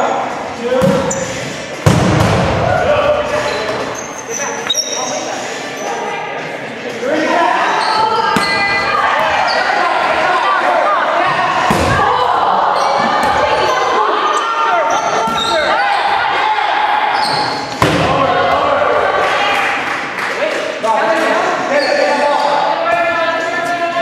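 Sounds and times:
dodgeballs thudding on gym floor: 0.8 - 1.2, 1.8 - 2.8, 8.3 - 9.4, 11.2 - 13.7, 17.3 - 18.7.

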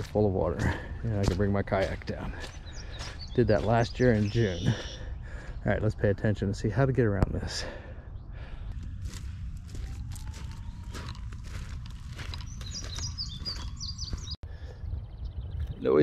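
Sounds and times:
footsteps crunching through dry stalks: 0.0 - 5.6, 8.6 - 14.4
bird chirping: 1.1 - 6.9, 7.9 - 16.0.

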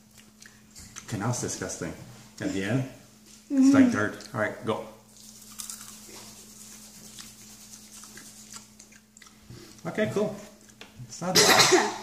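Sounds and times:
person chewing crunchy food: 5.1 - 9.9.

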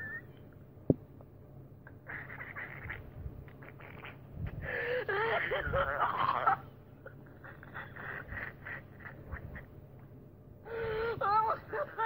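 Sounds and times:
rapid short duck-like calls: 2.1 - 4.2
loud nasal voice-like call: 2.1 - 6.6.

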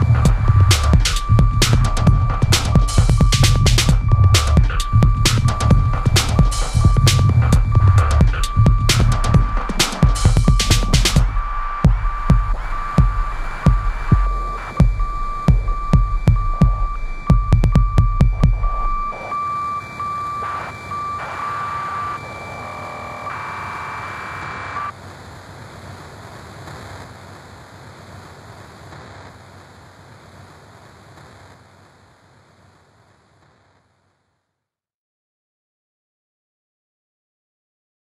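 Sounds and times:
thumping kick drum: 0.0 - 19.2
pulsing beeping synth tone: 0.0 - 24.9.

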